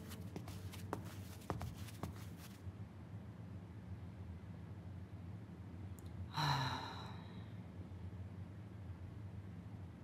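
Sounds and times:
woman sighing: 0:06.3 - 0:07.4.

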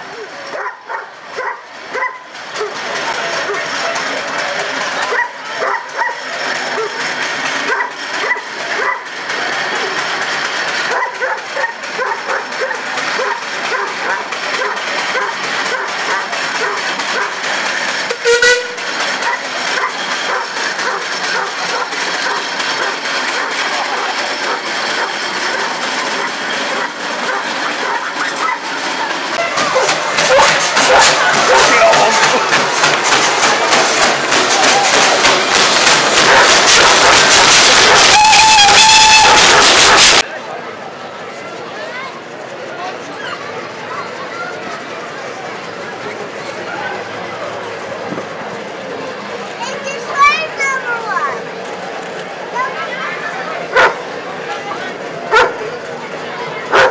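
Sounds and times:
crowd chatter: 0:00.0 - 0:56.9
steam road roller running: 0:00.0 - 0:56.9.

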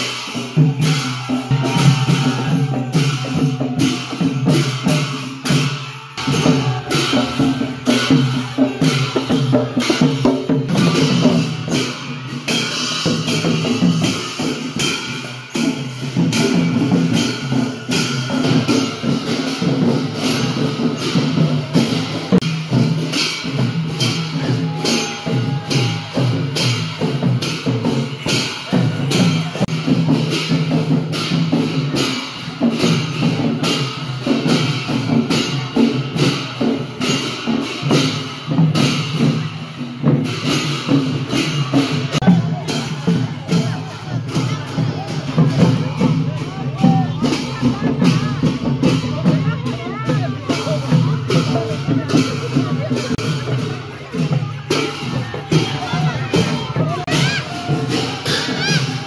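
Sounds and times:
clashing cymbals: 0:00.0 - 0:59.0
crowd chatter: 0:00.0 - 0:59.0
drums playing fast beat: 0:00.0 - 0:59.0.

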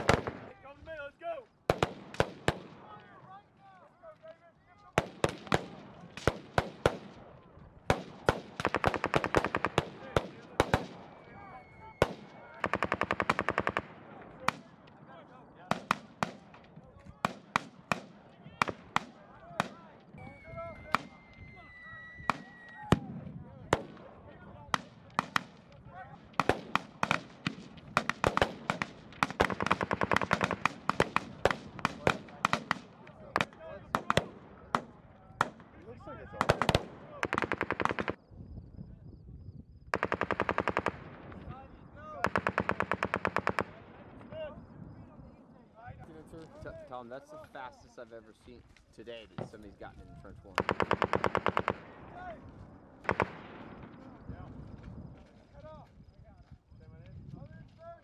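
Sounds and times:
automatic gunfire bursts: 0:00.0 - 0:00.4, 0:07.9 - 0:11.0, 0:12.0 - 0:14.0, 0:26.4 - 0:34.3, 0:36.4 - 0:38.2, 0:39.9 - 0:41.2, 0:42.2 - 0:43.8, 0:50.6 - 0:52.0, 0:53.0 - 0:54.0
single rifle shots: 0:00.0 - 0:00.5, 0:01.7 - 0:03.0, 0:05.0 - 0:11.3, 0:12.0 - 0:14.8, 0:15.6 - 0:20.0, 0:24.7 - 0:38.2, 0:39.9 - 0:41.6, 0:50.5 - 0:52.4, 0:53.0 - 0:54.4.

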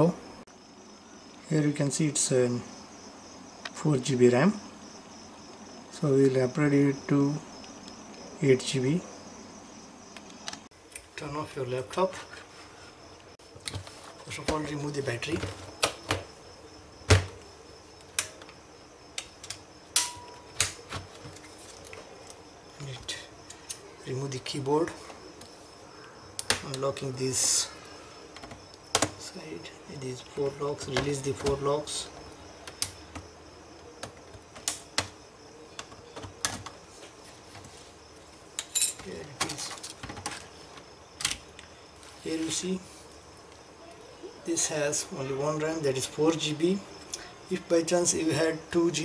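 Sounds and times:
plastic clicks and knocks: 0:28.4 - 0:29.2.

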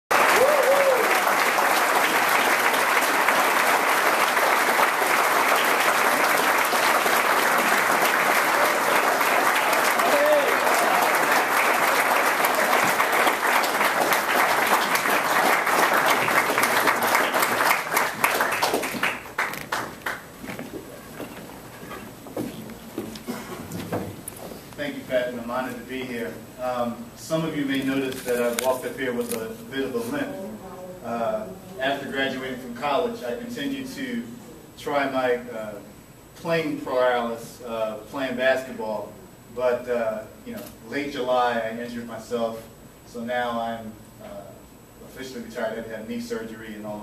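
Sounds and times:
calls from crowd: 0:00.1 - 0:18.0
audience applauding: 0:00.1 - 0:20.8.

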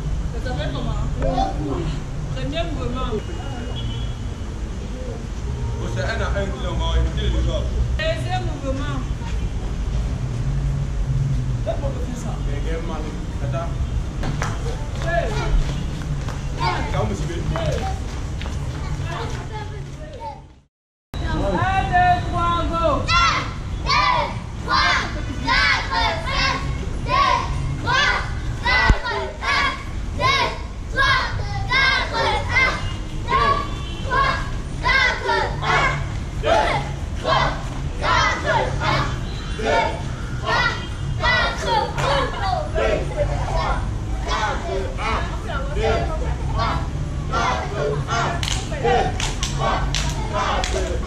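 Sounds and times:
children chanting: 0:23.1 - 0:51.0.

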